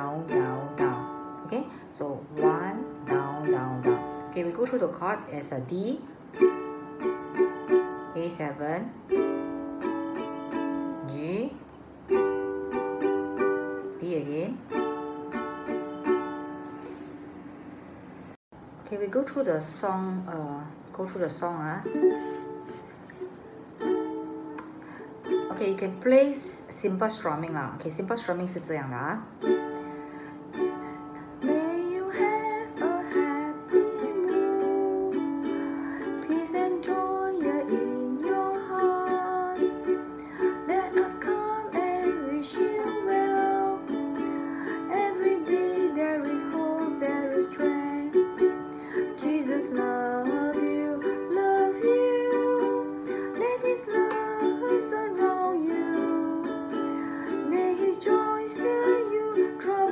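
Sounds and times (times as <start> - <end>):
person singing: 0.0 - 1.6, 2.3 - 4.3, 31.4 - 59.9
ukulele strumming: 0.0 - 17.2, 21.1 - 59.9.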